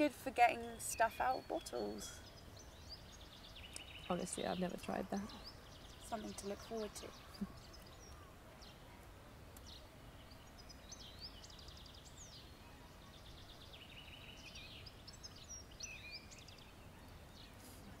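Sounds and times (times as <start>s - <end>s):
small birds chirping: 0.0s - 18.0s.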